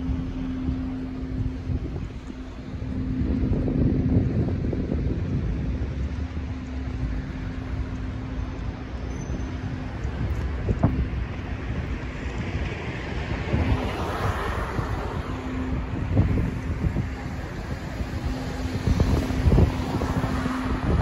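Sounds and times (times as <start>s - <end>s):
cars driving past: 0.0s - 21.0s
steady engine hum: 0.0s - 21.0s.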